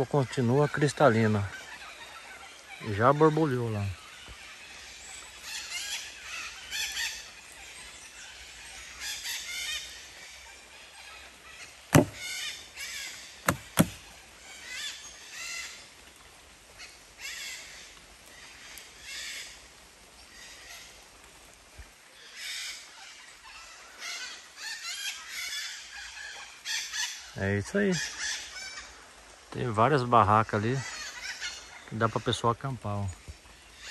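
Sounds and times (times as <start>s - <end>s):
birds giving short calls: 11.5s - 15.7s.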